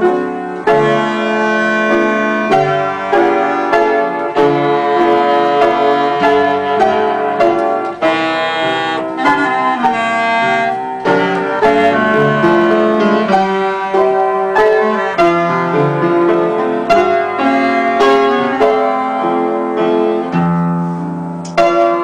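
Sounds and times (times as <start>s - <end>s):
clarinet melody: 0.0s - 20.6s
piano chords: 0.0s - 22.0s.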